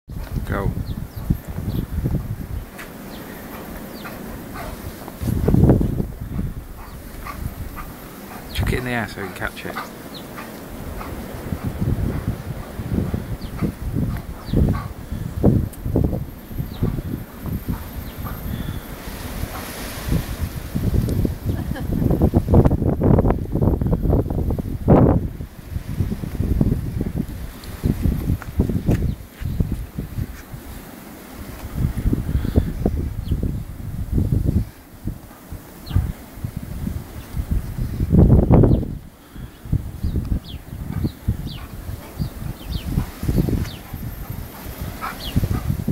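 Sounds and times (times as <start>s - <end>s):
wind buffeting the microphone: 0.0s - 45.9s
dog deep vocalisation: 13.4s - 15.0s.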